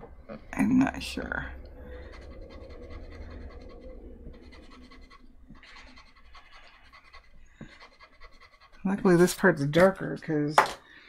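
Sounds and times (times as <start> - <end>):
eraser rubbing on wood: 2.0 - 10.0.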